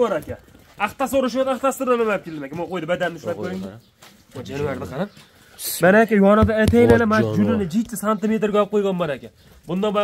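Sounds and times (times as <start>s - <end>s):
man speaking in a low voice: 0.0s - 10.0s.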